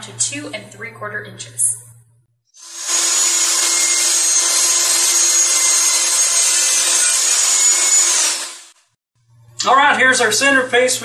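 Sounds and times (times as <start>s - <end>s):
table saw ripping a board: 2.6s - 8.9s.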